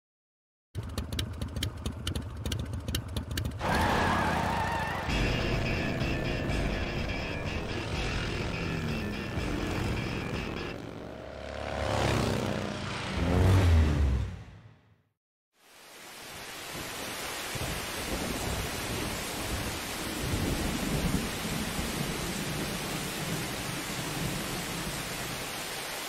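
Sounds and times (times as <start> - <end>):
motorcycle engine revving: 0.8 - 14.8
synth music: 5.1 - 11.6.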